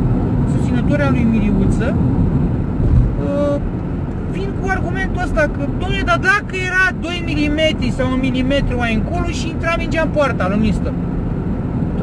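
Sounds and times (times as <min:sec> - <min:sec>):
car engine and tyre noise: 0:00.0 - 0:12.0.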